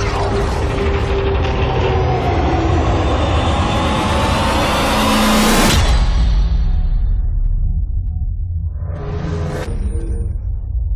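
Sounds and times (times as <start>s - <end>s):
deep low rumble: 0.0s - 10.9s.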